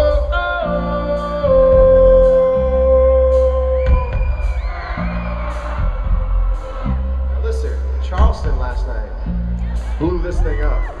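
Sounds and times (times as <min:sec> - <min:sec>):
crowd whooping and cheering: 0:02.5 - 0:11.0
drum hits: 0:08.1 - 0:09.0.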